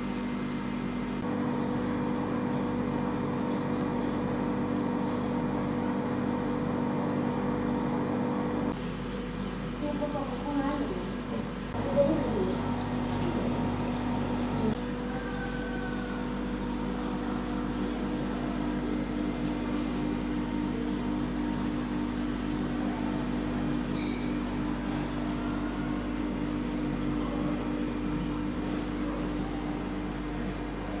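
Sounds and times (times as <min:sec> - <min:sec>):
mechanical hum with even tones: 0:00.0 - 0:31.0.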